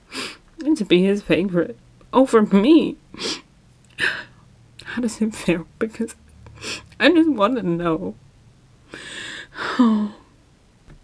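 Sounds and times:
woman speaking: 0.6s - 3.0s, 4.8s - 6.2s, 7.0s - 8.2s
woman sniffling sobs: 3.1s - 4.4s, 8.9s - 10.3s.

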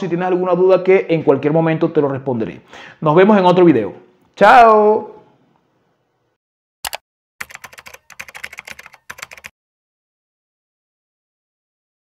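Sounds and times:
computer keyboard typing: 6.8s - 9.5s.

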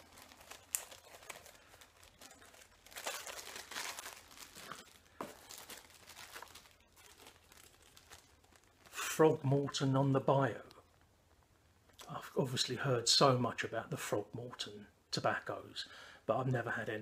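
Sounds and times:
plastic bags crinkling: 0.0s - 10.7s.

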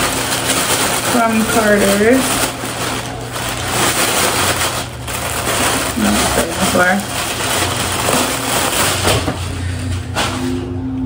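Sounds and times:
clothes rustling in shopping bag: 0.0s - 10.6s.

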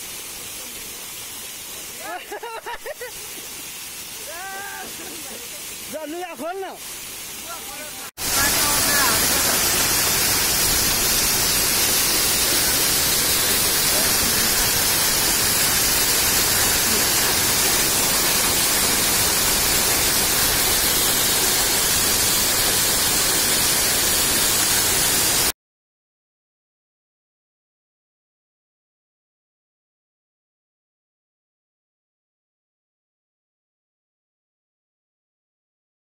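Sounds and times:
waterfall crashing onto rocks: 0.0s - 25.5s.

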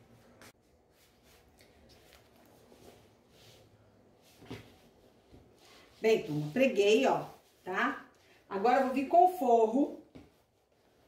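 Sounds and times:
faint fabric rustles: 0.0s - 11.0s.

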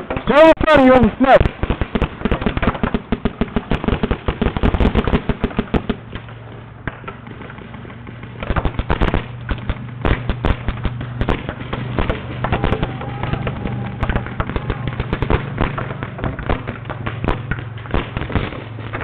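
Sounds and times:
paintball markers firing rapidly: 0.0s - 19.0s.

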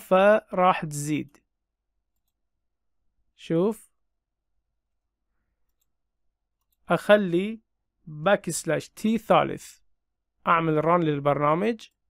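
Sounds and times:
man speaking: 0.0s - 1.4s, 3.4s - 4.0s, 6.8s - 12.0s.

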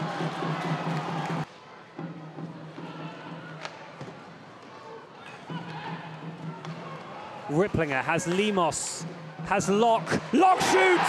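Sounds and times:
crowd and rink noise: 0.0s - 11.0s.

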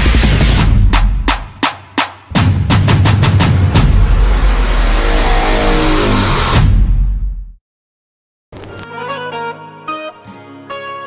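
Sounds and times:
deep rumble: 2.3s - 7.6s
engine rev sound effect: 2.4s - 7.2s.

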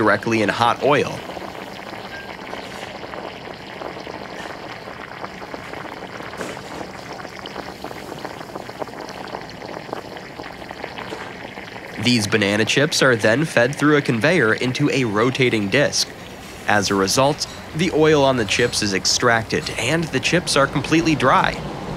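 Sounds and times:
oil sizzling in deep fryer: 0.0s - 21.7s.

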